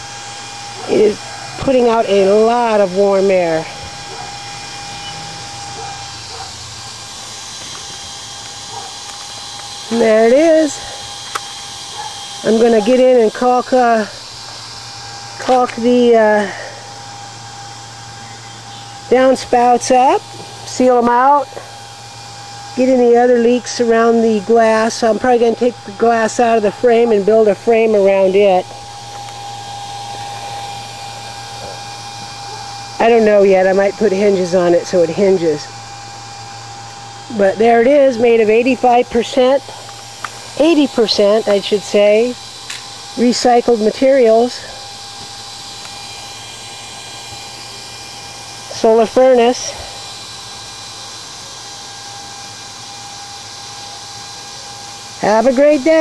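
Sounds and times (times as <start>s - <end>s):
small electric fan running: 0.0s - 56.0s.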